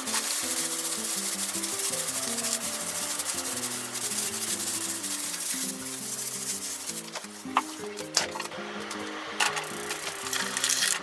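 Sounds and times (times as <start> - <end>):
plastic bag crinkling: 0.0 - 7.4
soft background music: 0.0 - 11.0.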